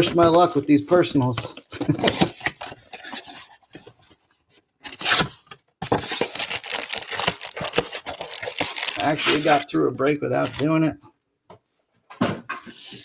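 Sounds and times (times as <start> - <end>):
plastic shrink-wrap tearing: 6.0 - 9.8.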